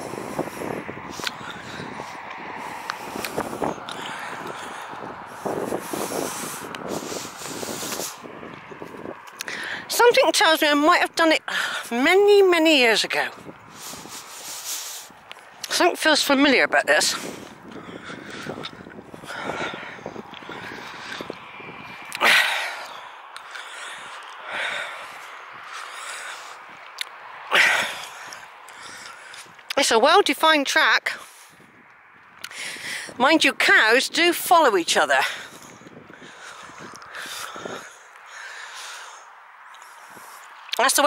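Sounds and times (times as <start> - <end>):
person breathing: 0.0 - 8.7, 9.4 - 9.9, 13.6 - 15.6, 17.2 - 29.6, 32.4 - 33.2, 35.2 - 40.7
footsteps on grassy track: 0.0 - 29.8
footsteps on grass: 13.4 - 15.6.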